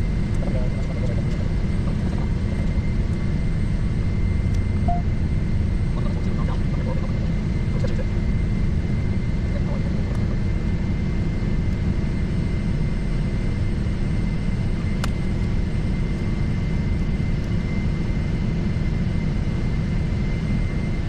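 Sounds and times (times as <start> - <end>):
jet engines idling: 0.0 - 17.8
thin steady high tone: 4.9 - 5.1.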